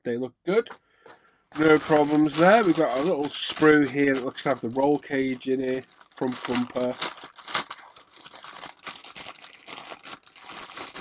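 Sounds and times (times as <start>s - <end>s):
plastic bag crinkling: 1.5s - 11.0s
sharp plastic crackle: 1.5s - 11.0s.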